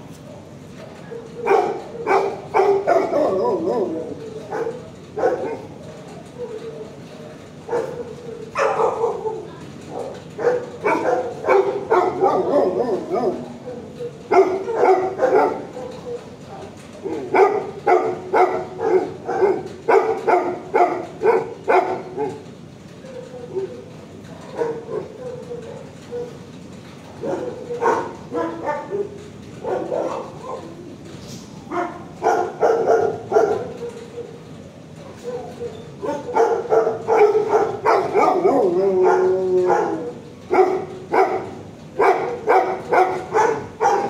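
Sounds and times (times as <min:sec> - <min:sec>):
dogs barking: 0:00.3 - 0:31.0, 0:31.6 - 0:44.0.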